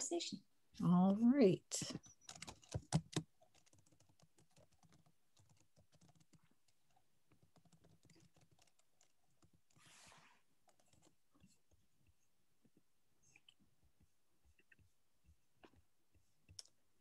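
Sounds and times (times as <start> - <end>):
typing on computer keyboard: 2.0 - 9.8.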